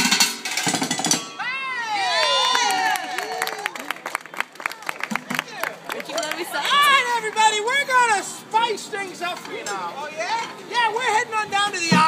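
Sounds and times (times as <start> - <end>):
high whooping shouts: 1.4 - 4.0.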